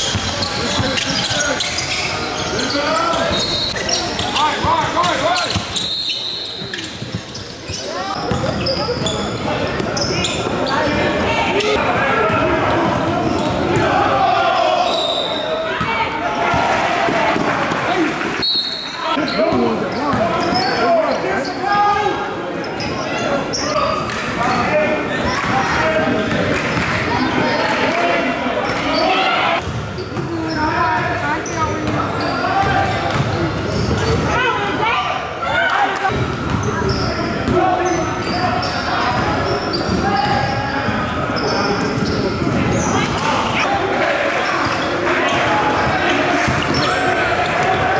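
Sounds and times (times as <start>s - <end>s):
ball bouncing on wooden court: 8.2s - 9.1s.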